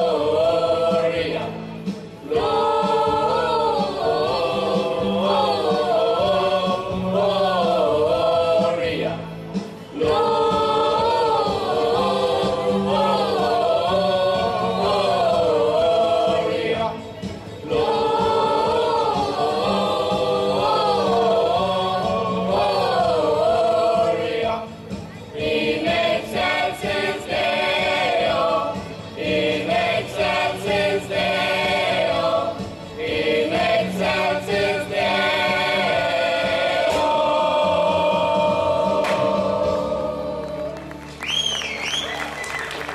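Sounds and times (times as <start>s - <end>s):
mixed choir singing a carol: 0.0s - 41.0s.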